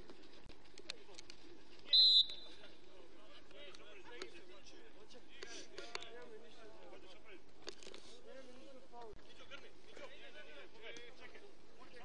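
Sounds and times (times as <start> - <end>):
referee's whistle blast: 1.9 - 2.5.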